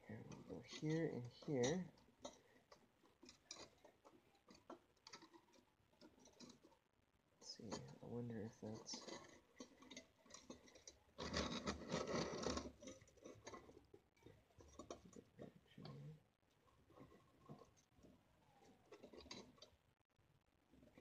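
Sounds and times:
rustling: 0.0s - 20.0s.

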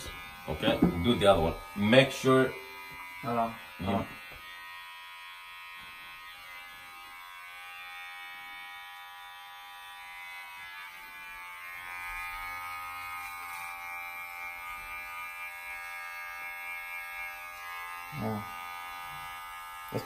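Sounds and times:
electric hair clippers buzzing: 0.0s - 20.0s.

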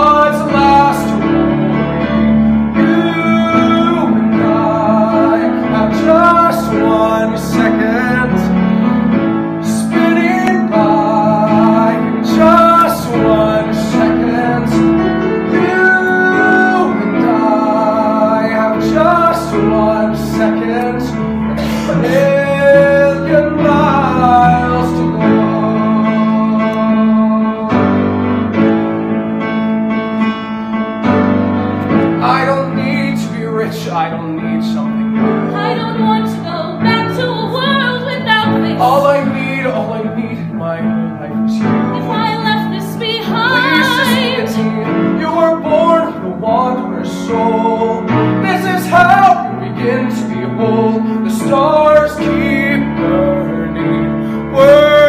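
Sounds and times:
piano held chords: 0.0s - 55.0s
duet singing: 31.2s - 55.0s.

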